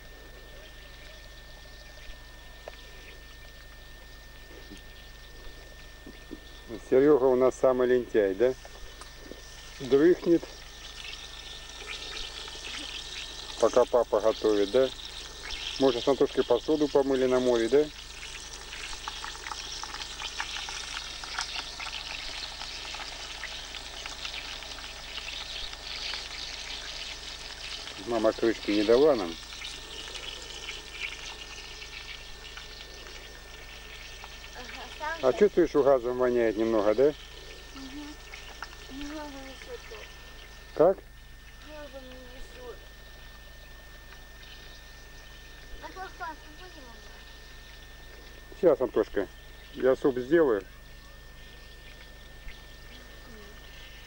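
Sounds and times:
background hiss: 0.0 - 54.0
chicken frying in oil: 0.0 - 54.0
thin constant whine: 0.0 - 54.0.

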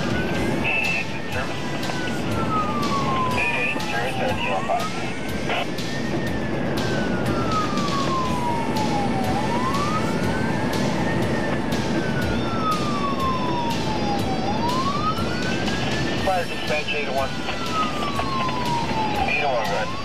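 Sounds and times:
emergency siren wailing: 0.0 - 20.0
road noise: 0.0 - 20.0.

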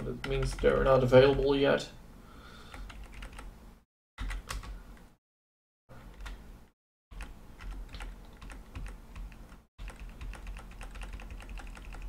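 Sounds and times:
computer keyboard keys clicking: 2.7 - 3.5, 7.2 - 12.0.

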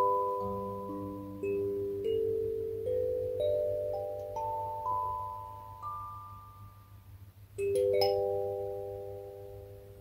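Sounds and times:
kalimba chord ringing: 0.0 - 6.8, 7.6 - 9.8.

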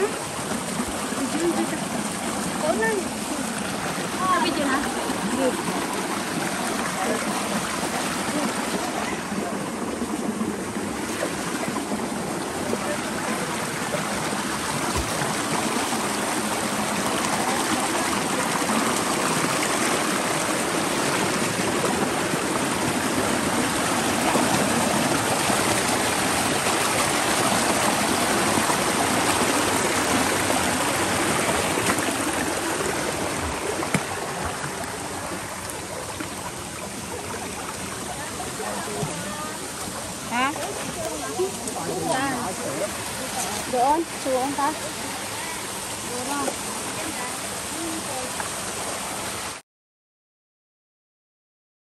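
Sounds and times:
stream running over stones: 0.0 - 49.6.

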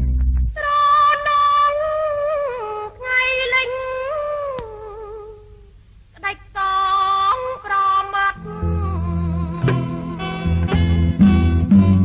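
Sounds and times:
faint low record hum: 0.0 - 12.0
woman singing a long note: 6.2 - 10.3.

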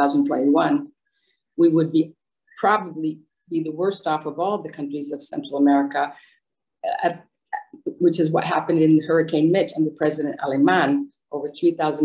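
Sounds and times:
woman speaking: 0.0 - 1.0, 1.6 - 6.2, 6.8 - 12.0.

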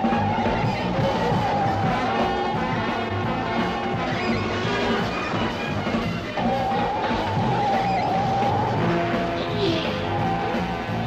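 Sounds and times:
truck tyres squealing: 0.0 - 11.0.

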